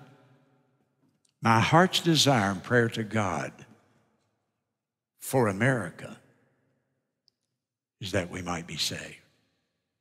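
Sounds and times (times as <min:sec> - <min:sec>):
man speaking: 0:01.4 - 0:03.7, 0:05.2 - 0:06.2, 0:08.0 - 0:09.2.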